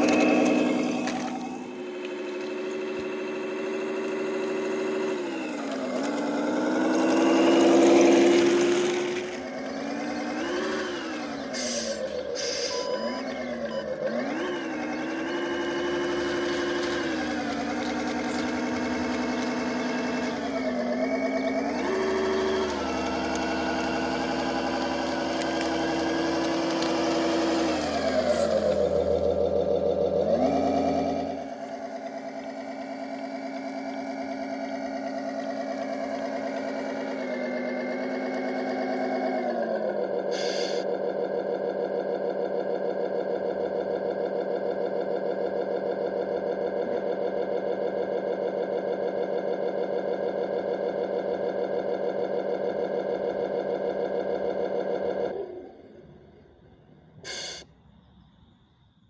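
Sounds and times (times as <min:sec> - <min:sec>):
simulated diesel truck engine: 0:00.0 - 0:59.0
short hiss: 0:57.3 - 0:57.7.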